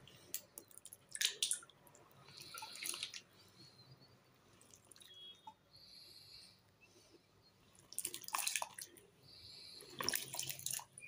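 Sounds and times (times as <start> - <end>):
water splashing and dripping: 0.8 - 3.2, 7.9 - 8.9, 10.0 - 11.0.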